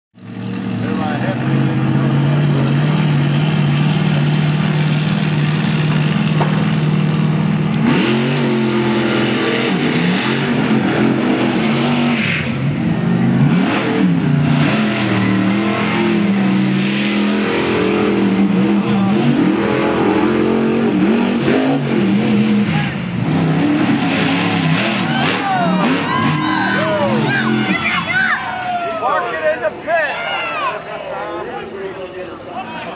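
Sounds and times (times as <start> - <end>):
monster truck engine revving: 0.2 - 28.6.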